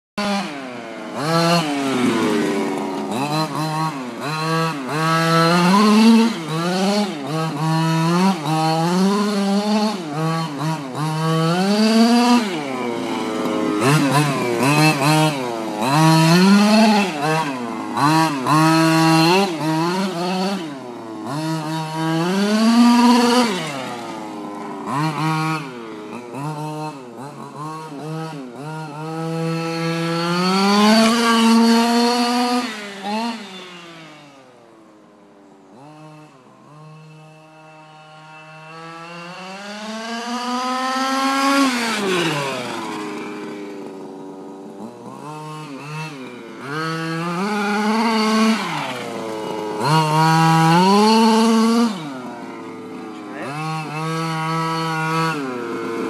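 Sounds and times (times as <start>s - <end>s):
small two-stroke engine revving: 0.2s - 56.0s.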